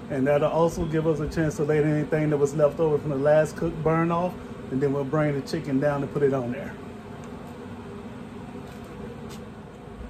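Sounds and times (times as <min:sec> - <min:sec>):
smoker fan humming and hissing: 0:00.0 - 0:10.0.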